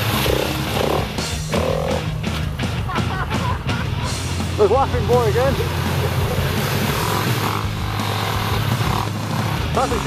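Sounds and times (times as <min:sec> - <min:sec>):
dirt bike engine revving: 0:00.0 - 0:10.0
water spraying off wheels: 0:04.9 - 0:10.0.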